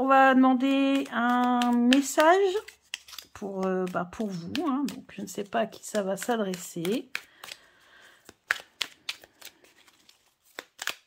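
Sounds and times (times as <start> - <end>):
cards being shuffled: 0.7 - 11.0.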